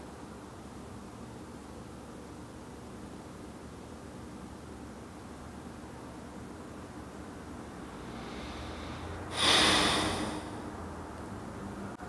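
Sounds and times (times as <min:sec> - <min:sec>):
man sniffing: 0:08.0 - 0:10.6.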